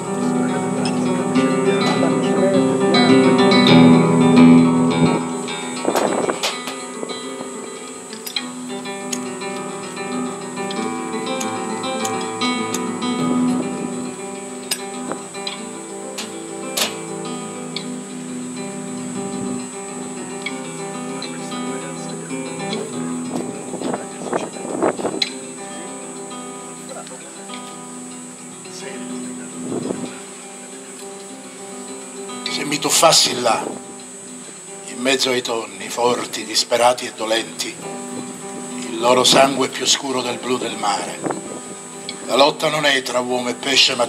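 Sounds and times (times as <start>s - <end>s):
classical guitar plucked notes: 0.0s - 44.0s.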